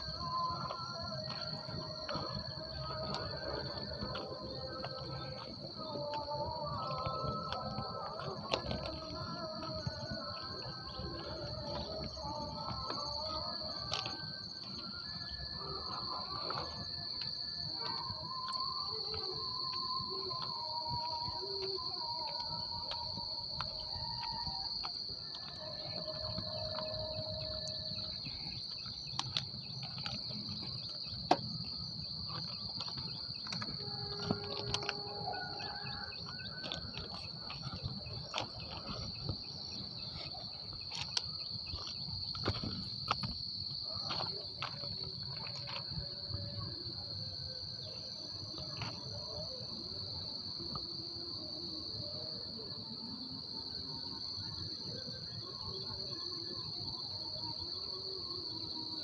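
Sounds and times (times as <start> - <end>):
footsteps on track ballast: 0.0 - 46.4
insects droning: 0.0 - 59.0.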